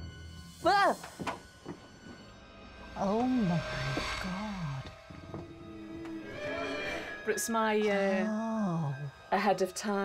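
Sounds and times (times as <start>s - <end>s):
low background music drone: 0.0s - 10.0s.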